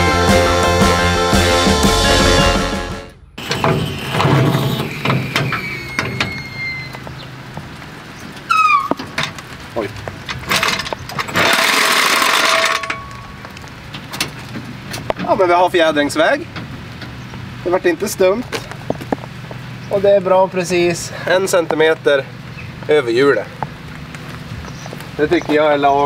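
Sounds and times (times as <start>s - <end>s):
rock music: 0.0s - 3.6s
short falling squeal: 3.2s - 7.3s, 8.5s - 9.0s.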